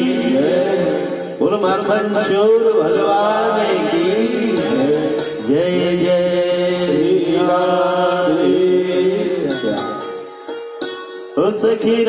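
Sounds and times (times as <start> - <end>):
devotional singing: 0.0 - 10.2, 11.4 - 12.0.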